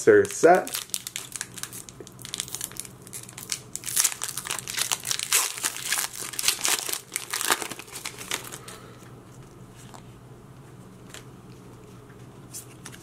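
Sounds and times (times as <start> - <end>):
foil wrapper crinkling and tearing: 0.1 - 8.8.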